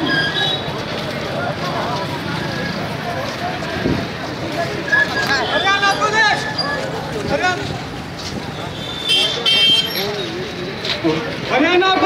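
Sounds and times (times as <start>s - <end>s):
men's voices in crowd: 0.8s - 12.0s
vehicle horn beep: 8.7s - 10.0s.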